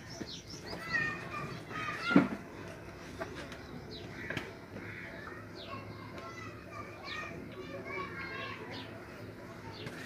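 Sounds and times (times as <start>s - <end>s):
faint voices: 0.0s - 10.0s
small birds chirping: 0.0s - 10.0s.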